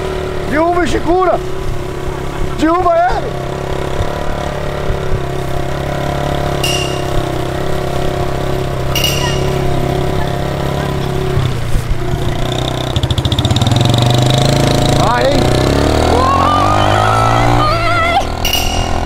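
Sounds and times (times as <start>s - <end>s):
small motorcycle engine running: 0.0s - 19.0s.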